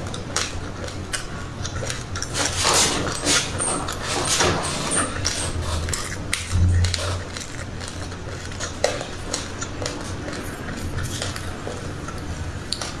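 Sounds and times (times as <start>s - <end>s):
crunchy chewing of seeds: 0.0s - 13.0s.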